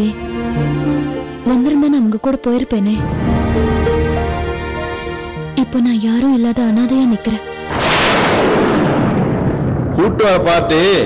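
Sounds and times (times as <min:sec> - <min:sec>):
dramatic boom hit: 0:07.7 - 0:10.5.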